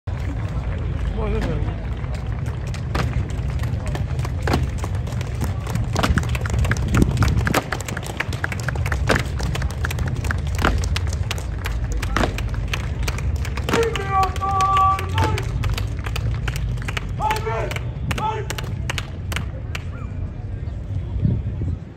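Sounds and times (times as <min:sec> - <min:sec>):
crowd voices: 0:00.1 - 0:21.9
shoes knocking on stone pavement: 0:01.3 - 0:15.7.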